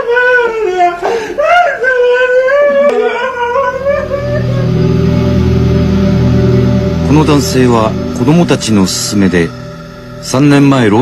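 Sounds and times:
person wailing and sobbing: 0:00.0 - 0:05.5
low sustained music chords: 0:03.0 - 0:11.0.

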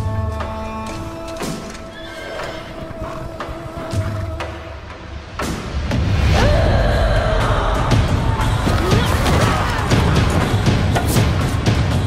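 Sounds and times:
hooves on ground: 0:00.0 - 0:04.7
horses whinnying: 0:00.8 - 0:04.6.

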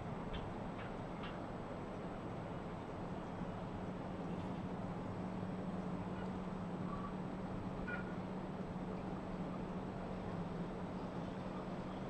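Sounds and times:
hum of distant vehicles: 0:00.0 - 0:12.0.

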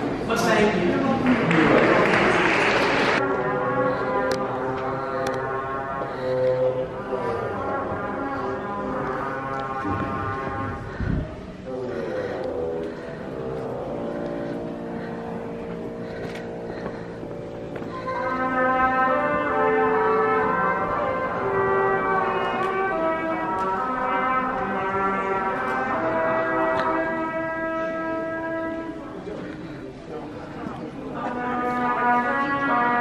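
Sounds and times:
orchestra warming up: 0:00.0 - 0:33.0.

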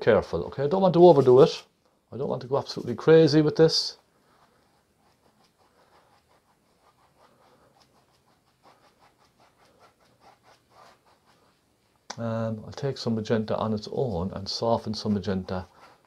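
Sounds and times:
paint brush scratching on canvas: 0:00.9 - 0:01.7, 0:02.5 - 0:12.0, 0:13.5 - 0:16.0.

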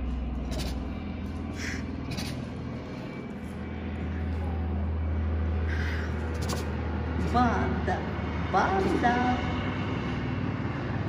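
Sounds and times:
tiger cubs chuffing: 0:00.0 - 0:07.7
steady low hum: 0:00.0 - 0:11.0.

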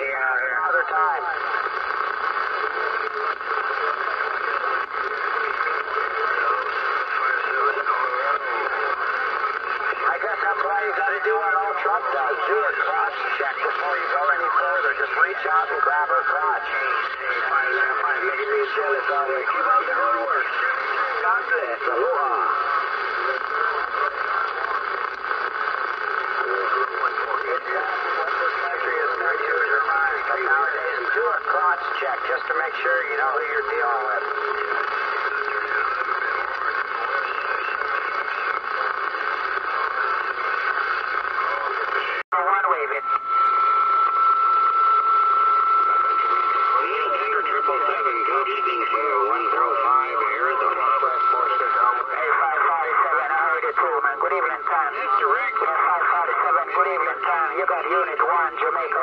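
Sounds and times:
radio static: 0:00.0 - 0:59.0
radio voices through speaker: 0:00.0 - 0:59.0.

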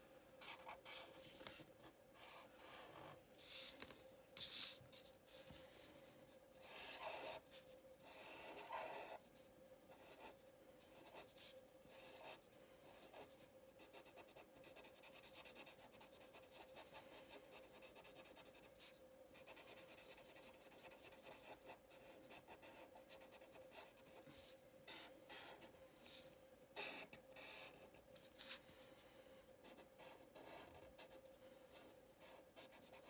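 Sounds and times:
thin steady hum: 0:00.0 - 0:33.0
marker scratching on paper: 0:04.4 - 0:05.6, 0:06.6 - 0:09.3, 0:09.9 - 0:25.7, 0:29.6 - 0:31.2, 0:32.2 - 0:33.0.

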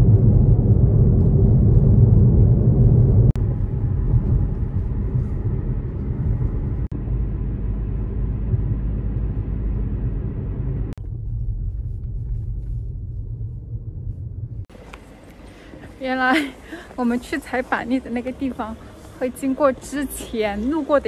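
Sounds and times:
car road and engine noise: 0:00.0 - 0:21.0.

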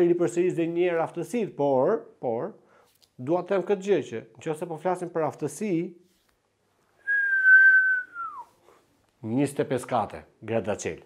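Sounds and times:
man whistling: 0:07.0 - 0:08.6.

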